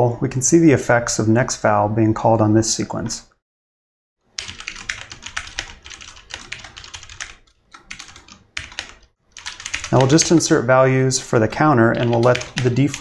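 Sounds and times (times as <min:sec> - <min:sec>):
fast keyboard typing: 0:04.4 - 0:13.0.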